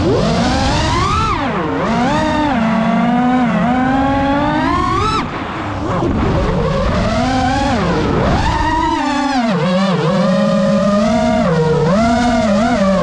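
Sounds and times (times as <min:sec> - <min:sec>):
quadcopter motors whining: 0:00.0 - 0:13.0.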